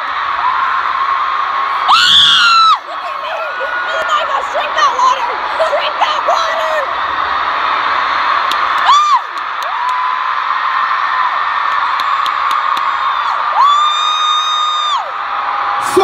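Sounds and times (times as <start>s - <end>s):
crowd screaming: 0.0s - 16.0s.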